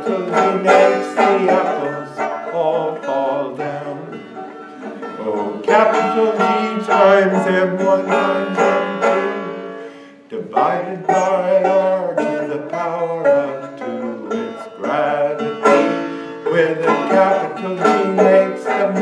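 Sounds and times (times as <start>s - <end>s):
banjo picking and strumming: 0.0s - 19.0s.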